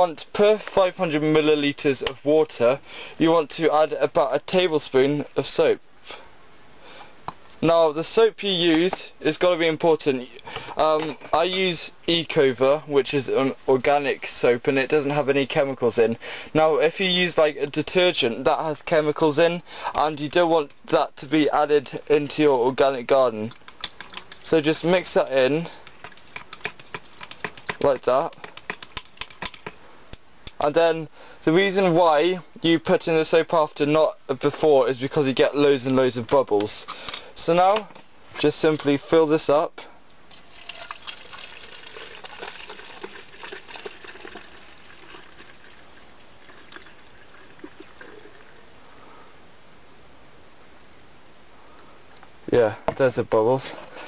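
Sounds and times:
plastic stirrer clicking in jug: 23.5 - 24.5, 25.8 - 29.8
water pouring into plastic bottle: 40.3 - 48.6.

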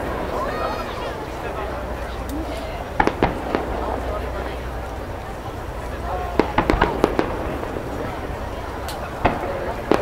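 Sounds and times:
distant fireworks bangs: 2.9 - 10.0.

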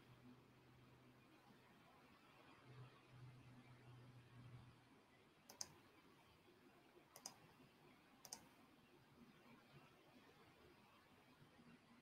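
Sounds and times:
faint sharp double clicks: 5.5 - 5.8, 7.1 - 7.4, 8.2 - 8.5.

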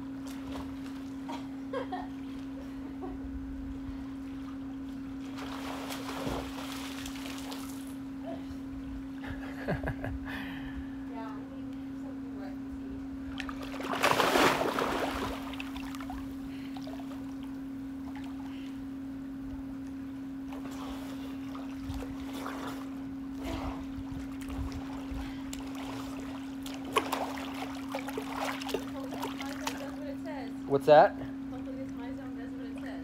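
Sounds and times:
steady low hum: 0.0 - 33.0
pool water splashing: 4.1 - 8.0, 13.3 - 18.5, 20.5 - 30.2
water lapping: 13.3 - 18.8, 20.6 - 30.4.

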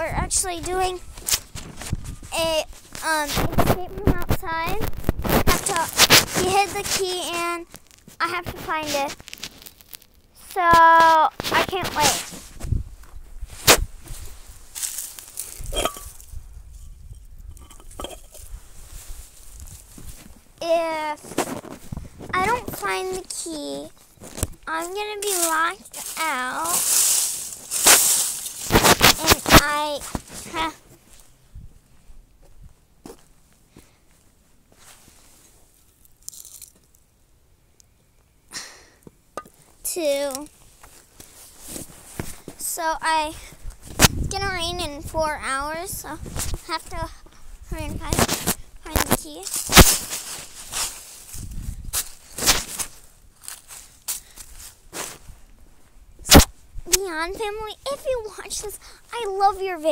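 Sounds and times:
child's wordless vocal sound: 24.6 - 27.2, 29.2 - 30.8, 56.9 - 59.9.

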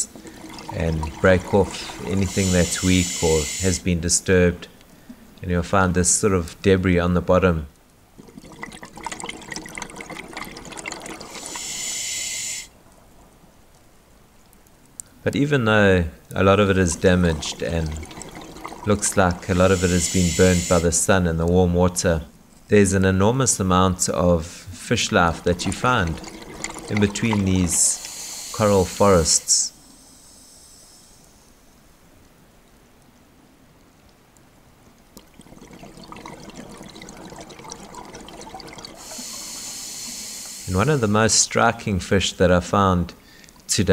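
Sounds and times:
bubbling exhale underwater: 0.0 - 3.6, 8.2 - 12.6, 16.8 - 20.8, 25.1 - 30.1, 35.2 - 41.1
regulator hiss of inhaled air: 1.7 - 3.8, 11.2 - 12.7, 19.6 - 20.9, 27.8 - 31.7, 39.0 - 41.2.

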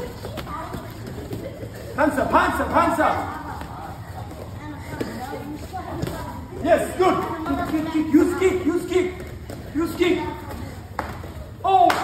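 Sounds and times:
bare feet on foam mats: 0.0 - 12.0.

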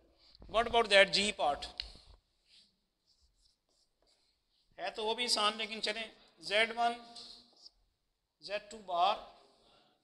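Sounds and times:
marker pen writing on whiteboard: 0.3 - 4.8.

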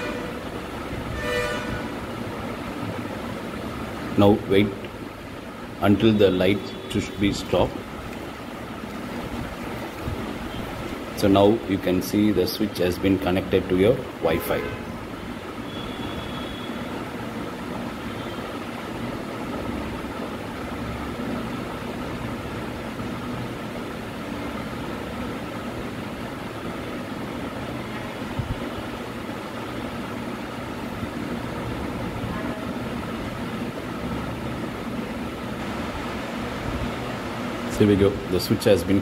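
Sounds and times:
steady mechanical hum: 0.0 - 39.0.

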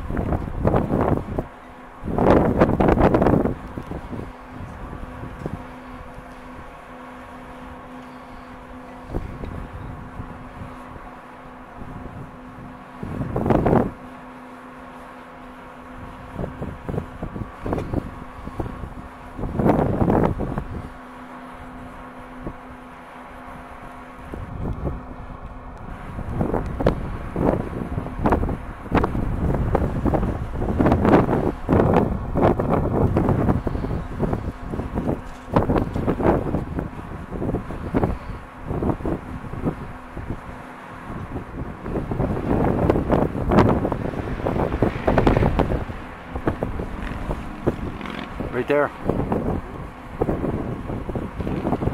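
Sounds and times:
wind buffeting microphone: 0.0 - 14.2, 15.8 - 22.8, 23.4 - 51.9.

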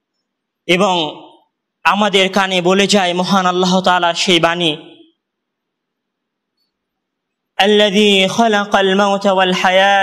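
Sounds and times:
faint background hiss: 0.0 - 8.6.

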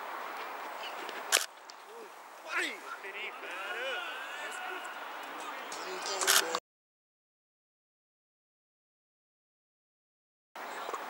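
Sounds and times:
players shouting: 1.9 - 6.2.

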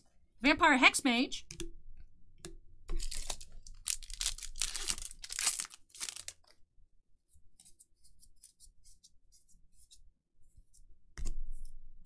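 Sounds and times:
foil wrapper tearing and crinkling: 3.0 - 6.5.

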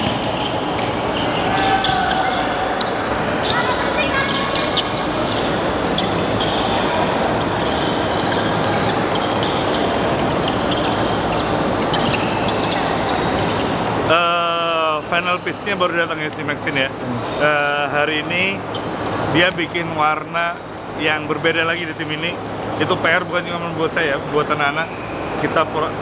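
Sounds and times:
ball bouncing on hardwood court: 0.0 - 13.9
hubbub of players' voices: 0.0 - 26.0.

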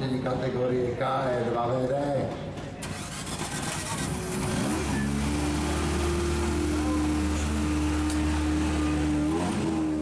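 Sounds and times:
car engine revving: 2.8 - 10.0.

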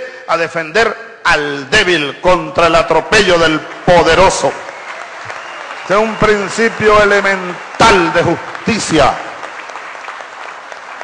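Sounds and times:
audience applauding: 3.6 - 11.0.

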